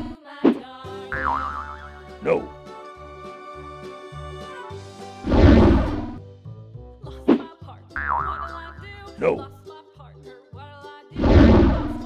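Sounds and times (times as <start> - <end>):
children's background music: 0.0 - 12.0
wobbling boing tone: 1.2 - 1.9, 8.0 - 8.5
cartoon falling swoosh: 5.3 - 6.2.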